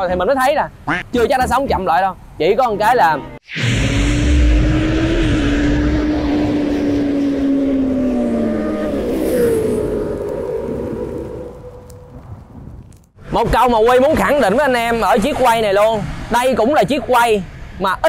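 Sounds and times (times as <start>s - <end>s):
motorcycle engine passing by: 3.6s - 11.5s.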